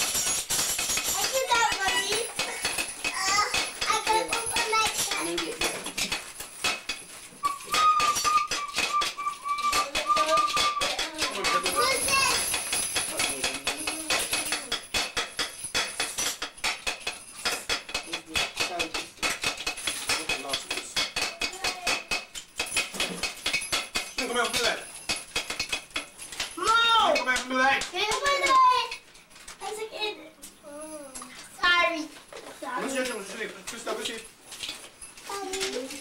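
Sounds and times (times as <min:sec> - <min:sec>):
children and adults talking: 0:01.1 - 0:06.5, 0:07.3 - 0:15.0, 0:20.1 - 0:22.3, 0:26.5 - 0:36.0
steady high tone: 0:07.4 - 0:12.0.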